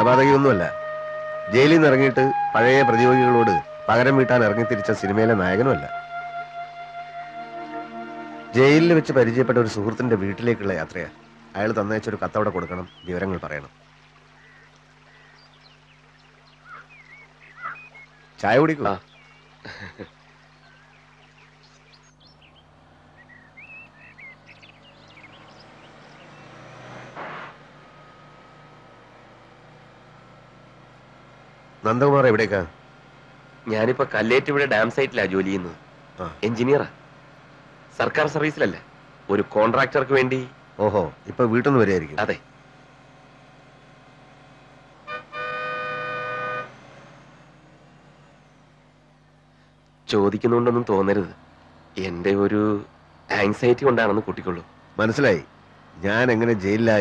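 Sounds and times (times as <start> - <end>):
rush of bus passing: 0.0 - 13.2, 22.2 - 57.0
birds chirping: 0.0 - 57.0
bus engine running: 0.0 - 57.0
bus horn two-tone blast: 7.3 - 11.6, 45.0 - 47.5.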